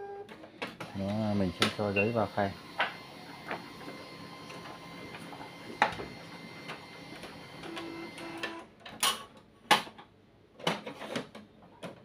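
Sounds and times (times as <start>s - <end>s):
printer mechanical whirr: 0.1s - 8.7s.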